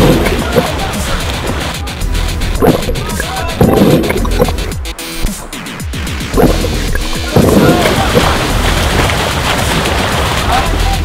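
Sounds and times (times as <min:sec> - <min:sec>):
background music with bass line: 0:00.0 - 0:11.0
heavy low hits: 0:01.6 - 0:05.5, 0:06.2 - 0:09.1.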